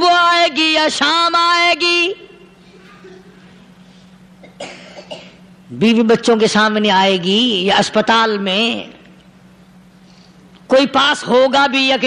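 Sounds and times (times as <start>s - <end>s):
steady low hum: 0.0s - 12.0s
short cough: 2.7s - 3.5s, 4.4s - 5.5s.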